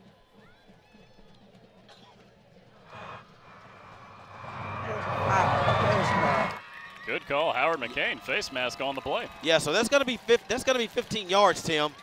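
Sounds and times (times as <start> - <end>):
faint stadium background: 0.0 - 12.0
distant echoing voices: 2.8 - 6.6.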